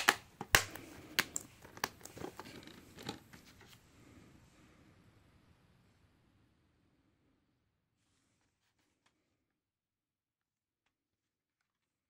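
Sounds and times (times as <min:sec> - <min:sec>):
plastic cases clicking and tapping: 0:00.0 - 0:03.4.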